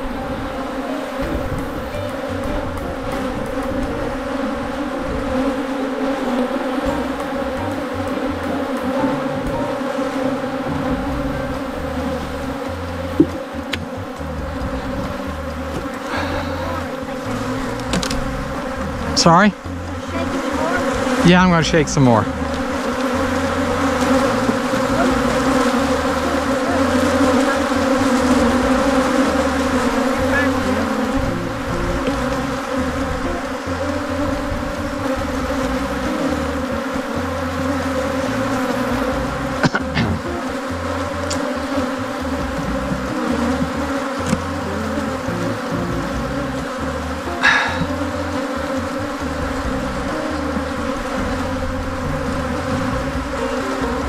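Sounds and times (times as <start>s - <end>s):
bees buzzing: 0.0s - 54.0s.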